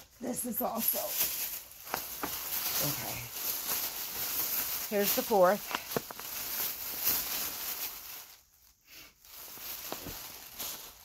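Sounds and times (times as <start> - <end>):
plastic bag rustling: 0.0 - 11.0.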